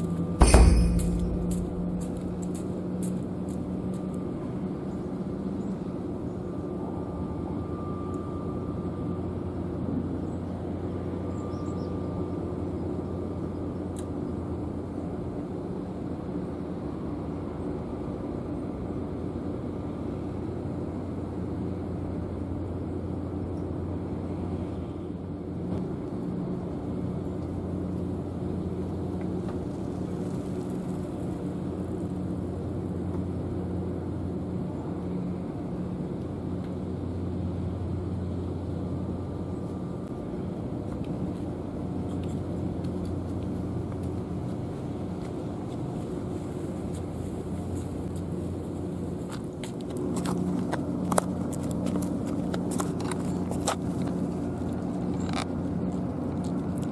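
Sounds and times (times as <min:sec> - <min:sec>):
distant machinery hum: 0:00.0 - 0:56.9
low mechanical drone: 0:00.0 - 0:56.9.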